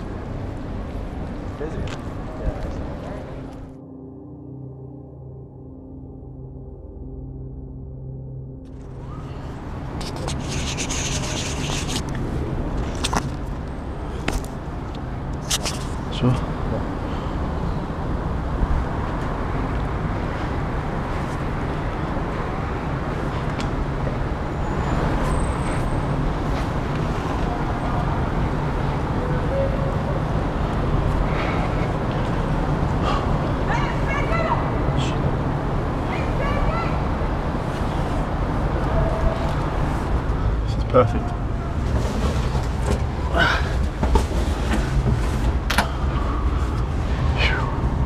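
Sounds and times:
low music drone: 0.0s - 15.4s
distant city traffic rumble: 0.0s - 48.0s.

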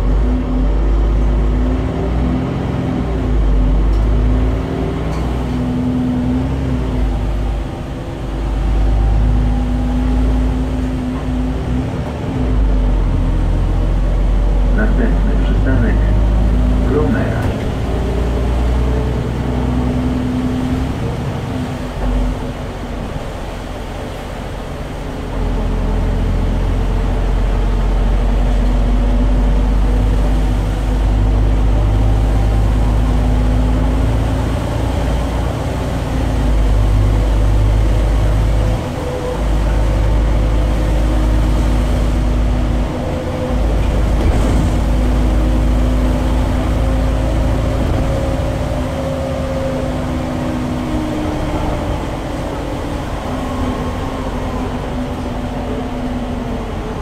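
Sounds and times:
bus diesel engine droning: 0.0s - 57.0s.

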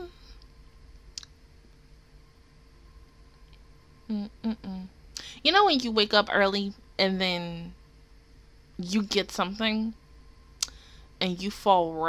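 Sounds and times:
faint electrical hum: 0.0s - 12.0s.

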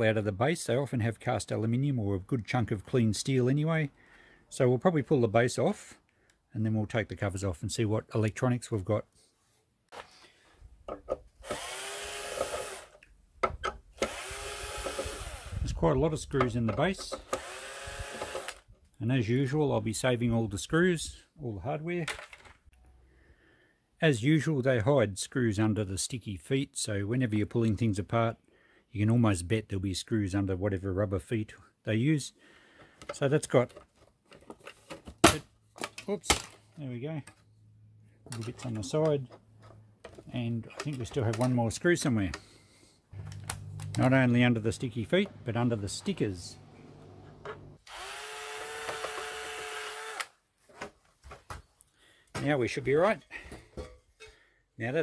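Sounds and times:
power drill unscrewing screws: 11.4s - 13.1s, 14.0s - 15.6s, 17.0s - 18.7s, 47.4s - 50.4s.

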